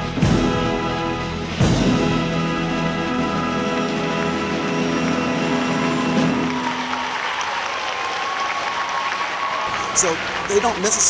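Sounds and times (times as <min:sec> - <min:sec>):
orchestra closing chord: 0:00.0 - 0:07.5
audience applause: 0:00.0 - 0:11.0.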